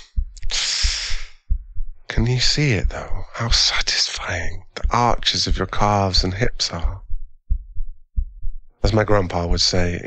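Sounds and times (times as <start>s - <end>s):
man speaking: 0.0s - 1.4s, 2.1s - 7.0s, 8.8s - 10.0s
soft low thumps: 0.0s - 10.0s.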